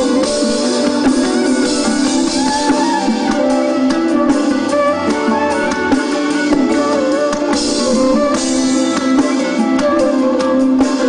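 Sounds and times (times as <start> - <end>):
live band with drums and guitars: 0.0 - 11.0.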